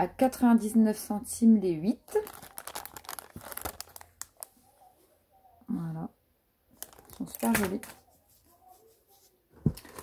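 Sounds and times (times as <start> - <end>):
plastic packaging crinkling: 2.0 - 4.6, 6.8 - 8.0.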